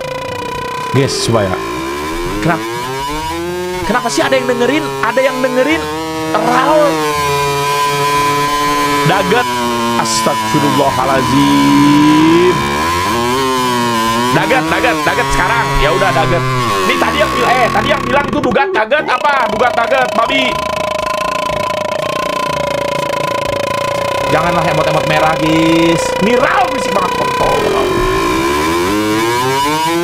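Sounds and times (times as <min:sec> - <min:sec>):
buzzy drone: 0:00.0 - 0:18.3, 0:19.8 - 0:30.0
steady two-pitch tone: 0:06.3 - 0:07.4, 0:10.4 - 0:12.8, 0:20.5 - 0:29.6.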